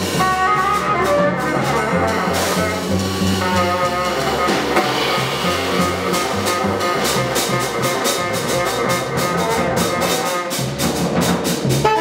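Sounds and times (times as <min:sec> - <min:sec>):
jazz quartet playing: 0:00.0 - 0:12.0.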